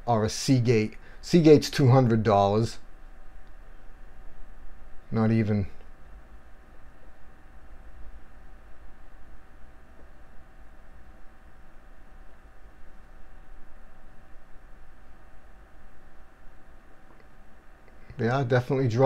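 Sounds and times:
low hum: 0.0 - 19.0.

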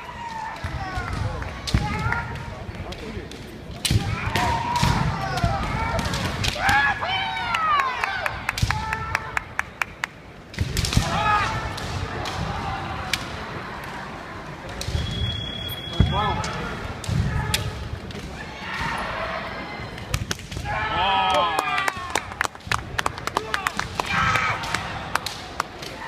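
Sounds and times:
shouts: 4.0 - 9.4, 20.6 - 22.3, 23.4 - 25.0.

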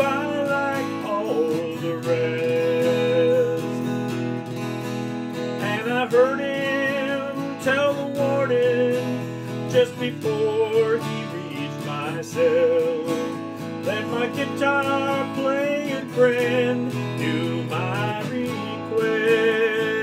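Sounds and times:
man singing country ballad: 0.0 - 20.0
strummed acoustic guitar: 0.0 - 20.0.

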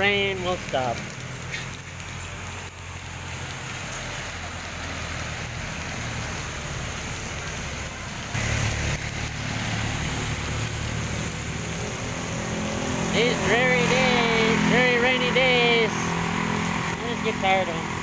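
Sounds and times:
rain falling on wet street: 0.0 - 18.0
vehicle engine and tyres on wet road: 0.0 - 18.0.

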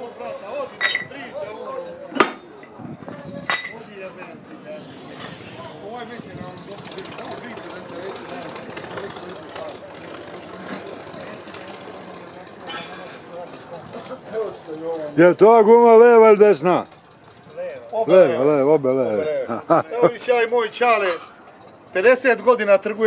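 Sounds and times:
murmur of people talking: 0.0 - 23.0
metal clanks: 0.7 - 1.4, 2.1 - 4.4, 5.1 - 15.3.

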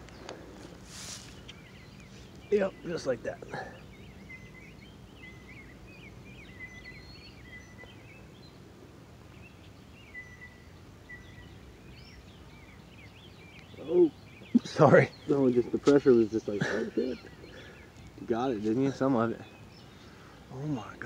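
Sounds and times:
faint birdsong chirps: 0.0 - 21.0
outdoor background noise: 0.0 - 21.0.

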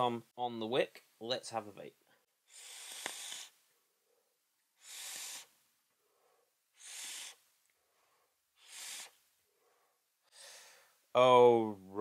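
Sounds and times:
vape inhale hiss: 2.5 - 3.6, 4.8 - 5.6, 6.7 - 7.4, 8.6 - 9.2.

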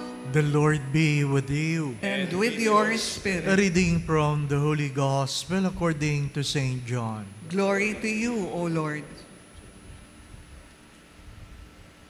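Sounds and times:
faint hiss and hum: 0.0 - 12.0
soft low rumbles: 3.2 - 11.9.

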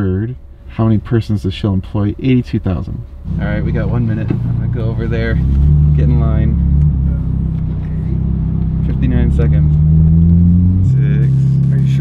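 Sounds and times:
car engine low drone: 0.0 - 12.0.

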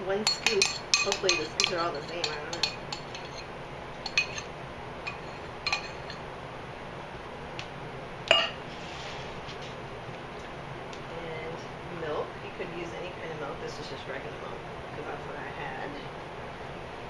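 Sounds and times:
kitchenware clinking: 0.0 - 6.2, 8.3 - 8.6
steady background hiss: 0.0 - 17.0.

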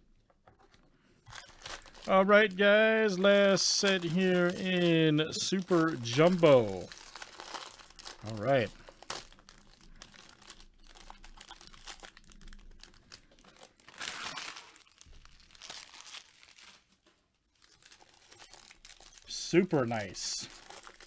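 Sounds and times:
foil wrapper crinkling: 1.2 - 21.0
foil wrapper ripping: 1.3 - 17.0, 17.6 - 21.0.

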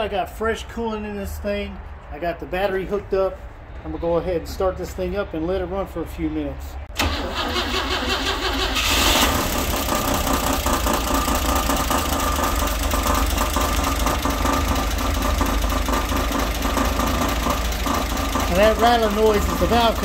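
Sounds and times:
car engine idling: 7.0 - 20.0.

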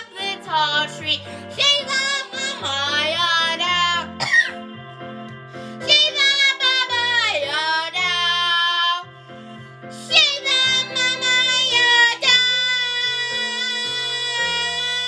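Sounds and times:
girl singing: 0.0 - 4.3, 5.8 - 9.0, 10.0 - 15.0
backing track with bass line: 0.0 - 8.8.

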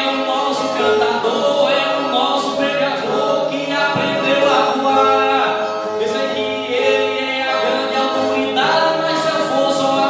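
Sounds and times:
strummed guitars: 0.0 - 10.0.

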